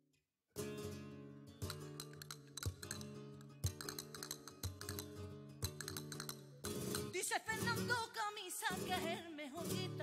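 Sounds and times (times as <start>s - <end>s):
flamenco guitar strumming: 0.6s - 10.0s.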